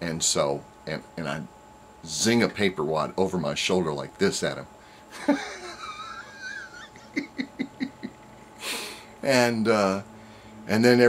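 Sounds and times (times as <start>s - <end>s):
man laughing: 5.1s - 9.0s.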